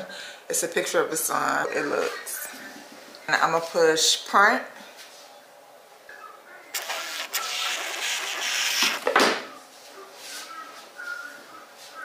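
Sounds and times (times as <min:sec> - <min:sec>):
label printer whirring: 0:06.8 - 0:09.1.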